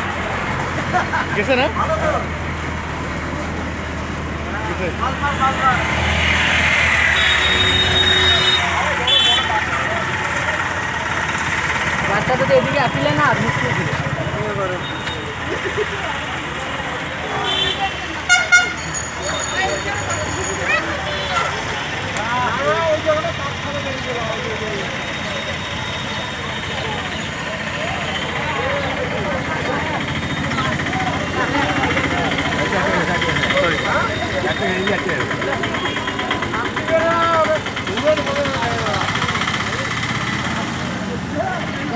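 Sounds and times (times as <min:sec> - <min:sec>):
road traffic: 0:00.0 - 0:41.9
voices talking: 0:00.0 - 0:41.9
vehicle horn honking: 0:07.1 - 0:09.6, 0:17.4 - 0:19.9.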